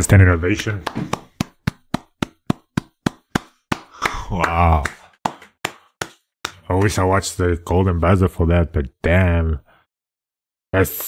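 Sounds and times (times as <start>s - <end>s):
person clapping: 0.6s - 7.0s.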